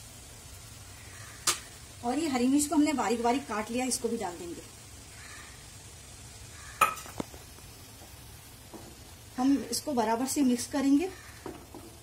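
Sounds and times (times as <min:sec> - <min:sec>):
meat sizzling in a frying pan: 0:00.0 - 0:12.0.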